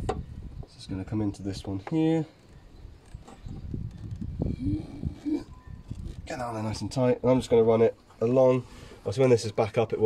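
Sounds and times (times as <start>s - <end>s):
short low squeaks: 2.4s - 6.4s.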